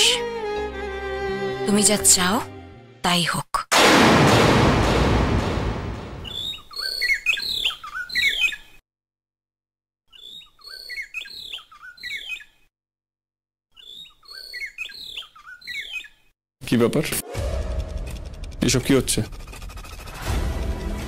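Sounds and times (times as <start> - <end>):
small bird chirping: 6.3 - 8.8, 10.1 - 12.7, 13.7 - 16.3.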